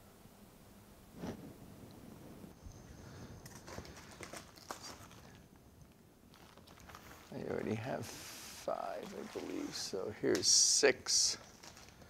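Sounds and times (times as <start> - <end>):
rustling: 1.2 - 10.1, 11.1 - 12.0.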